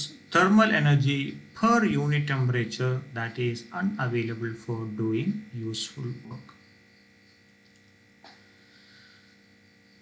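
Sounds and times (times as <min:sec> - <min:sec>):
faint electrical hum: 0:00.0 - 0:10.0.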